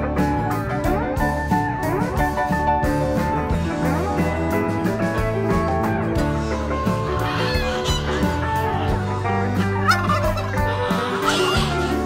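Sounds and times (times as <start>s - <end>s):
guitar music: 0.0s - 12.0s
turkeys gobbling: 6.8s - 12.0s.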